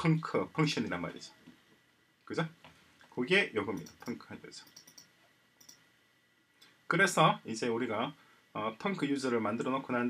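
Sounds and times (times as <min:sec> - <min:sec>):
man talking: 0:00.0 - 0:01.4, 0:03.2 - 0:04.7, 0:06.9 - 0:10.0
computer mouse click: 0:03.7 - 0:05.9.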